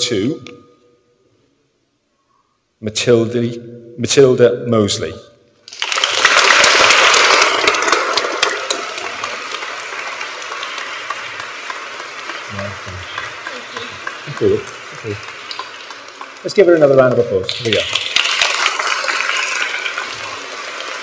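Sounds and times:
audience applauding: 0:05.7 - 0:21.0.

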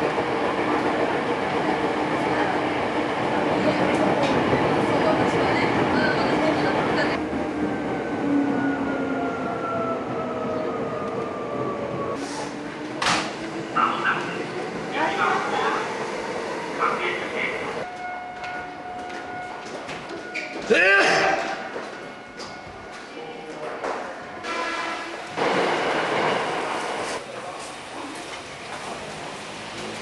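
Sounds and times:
electric train humming: 0:00.0 - 0:20.6
station voices: 0:00.3 - 0:17.9
train horn blast: 0:24.4 - 0:25.3.

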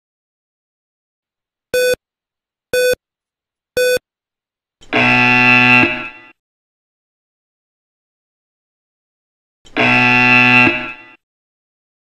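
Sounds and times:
short electronic beeps: 0:01.8 - 0:02.0, 0:02.8 - 0:03.0, 0:03.8 - 0:04.0.

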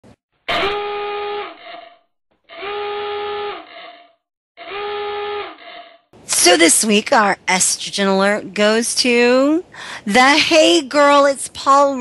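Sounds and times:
alarm horn blasts: 0:00.5 - 0:01.6, 0:02.5 - 0:03.8, 0:04.6 - 0:05.6.

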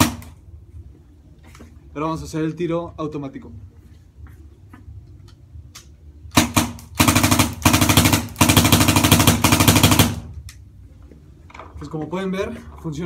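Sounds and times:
paintball marker firing bursts: 0:06.3 - 0:10.3.

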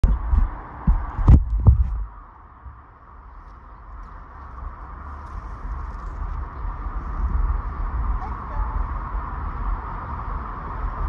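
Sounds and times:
phone handling rumble and thumps: 0:00.0 - 0:02.1.

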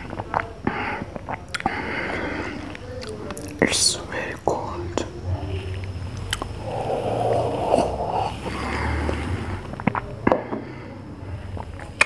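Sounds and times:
mouth clicks: 0:00.0 - 0:05.1, 0:05.7 - 0:10.4
person drinking: 0:00.0 - 0:12.0
low hum: 0:04.0 - 0:11.9.

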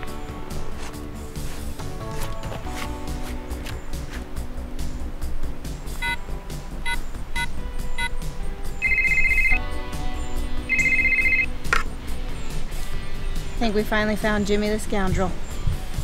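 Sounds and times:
short electronic phone beeps: 0:08.8 - 0:09.6, 0:10.7 - 0:11.5
trilling electronic phone ring: 0:08.8 - 0:09.6, 0:10.7 - 0:11.5.

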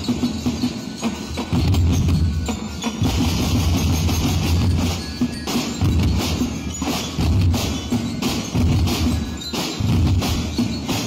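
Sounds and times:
drum band playing: 0:00.0 - 0:11.0.

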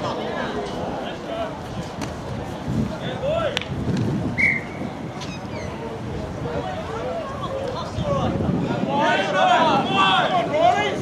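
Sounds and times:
referee's whistle blast: 0:04.4 - 0:04.8
players and spectators shouting: 0:06.6 - 0:11.0.

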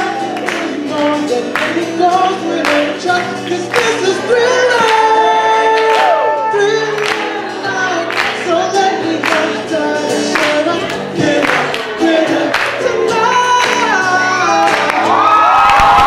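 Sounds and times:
acoustic guitar: 0:00.0 - 0:16.0
person singing: 0:00.0 - 0:16.0.

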